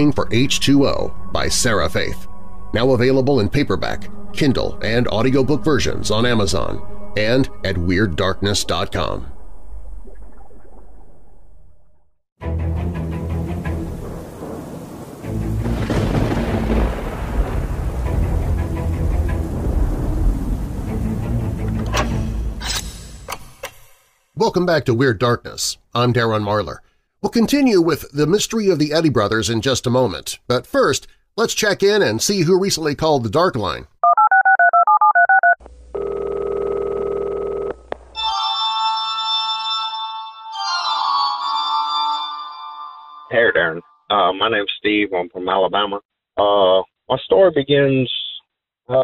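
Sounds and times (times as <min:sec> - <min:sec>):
background music: 0:00.0 - 0:09.5, 0:12.4 - 0:23.9, 0:38.1 - 0:44.0
rain: 0:13.4 - 0:22.6
thunder rumbling: 0:13.4 - 0:22.6
touch-tone dialing beeps: 0:34.0 - 0:37.3
telephone ringing tone: 0:34.0 - 0:40.8.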